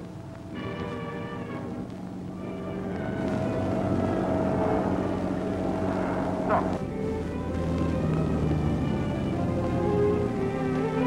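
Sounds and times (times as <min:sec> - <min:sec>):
sea noise: 0:00.0 - 0:11.0
ship engine hum: 0:00.0 - 0:11.0
orchestral music: 0:00.5 - 0:11.0
deep engine rumble: 0:01.4 - 0:11.0.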